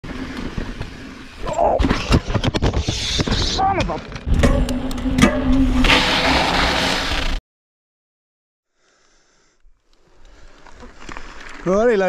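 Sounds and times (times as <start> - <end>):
bike tyre rolling on dirt: 0.0 - 3.6, 9.8 - 12.0.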